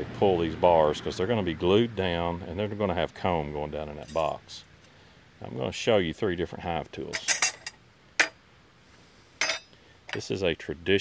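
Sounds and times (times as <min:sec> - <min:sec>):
metal tools clinking: 0:04.0 - 0:04.4, 0:07.1 - 0:08.4, 0:09.4 - 0:10.3.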